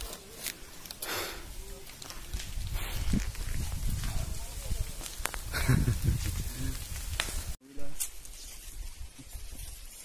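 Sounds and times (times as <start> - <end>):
wind rumble on microphone: 2.1 - 7.6.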